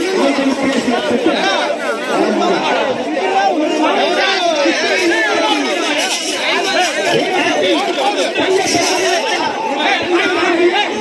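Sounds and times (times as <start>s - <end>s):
men talking over one another: 0.0s - 11.0s.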